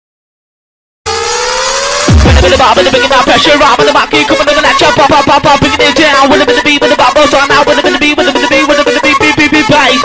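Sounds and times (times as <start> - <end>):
synthesized tone rising in pitch: 1.1 - 4.2.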